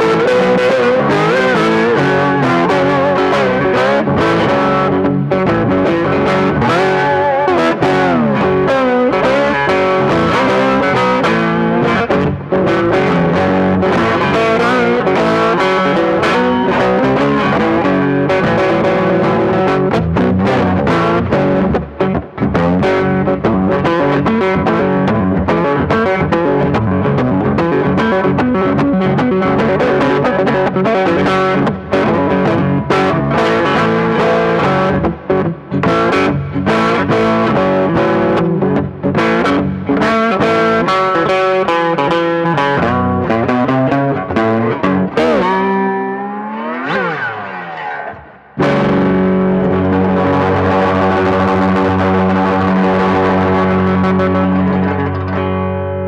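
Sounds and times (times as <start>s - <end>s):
electric guitar blues riff: 0.0s - 56.0s
guitar chord ringing: 0.0s - 56.0s.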